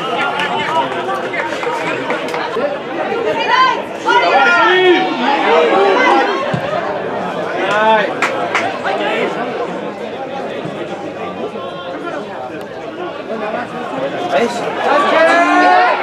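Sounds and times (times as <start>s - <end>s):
people shouting: 0.0s - 8.0s, 14.4s - 16.0s.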